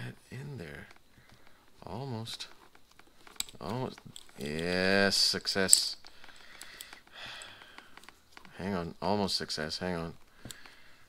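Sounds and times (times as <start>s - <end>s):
buckle clicks: 2.7s - 4.6s.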